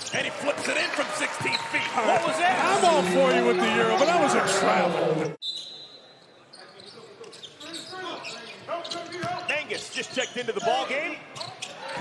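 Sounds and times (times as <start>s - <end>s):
sneakers squeaking on hardwood: 6.6s - 12.0s.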